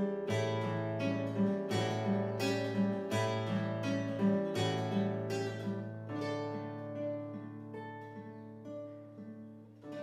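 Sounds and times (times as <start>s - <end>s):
classical guitar arpeggios: 0.0s - 10.0s.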